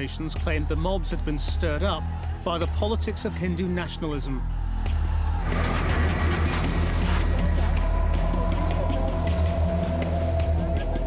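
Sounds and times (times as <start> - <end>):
background music: 0.0 - 11.0
steady low drone: 4.4 - 11.0.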